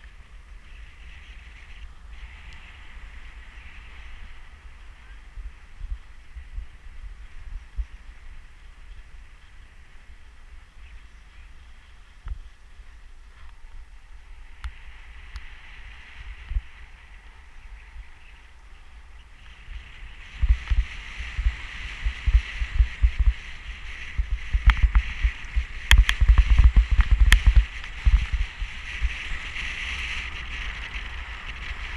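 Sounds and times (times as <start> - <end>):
wind buffeting microphone: 0.0 - 31.9
skis scraping over snow: 14.8 - 31.9.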